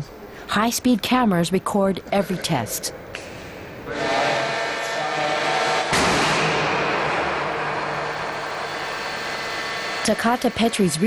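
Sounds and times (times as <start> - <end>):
loud humming machine noise: 3.9 - 11.0
sharp bang: 4.8 - 8.4.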